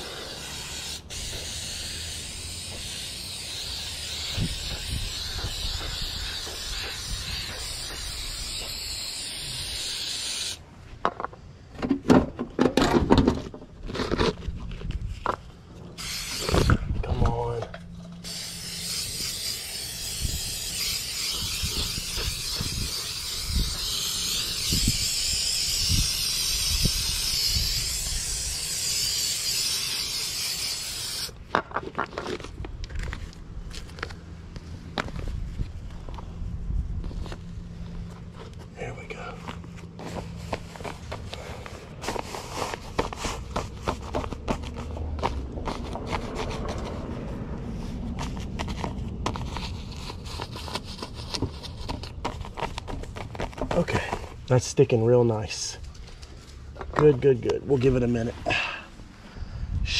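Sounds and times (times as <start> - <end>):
aerosol spray hissing: 0.0 - 10.6, 16.0 - 16.7, 18.2 - 31.4.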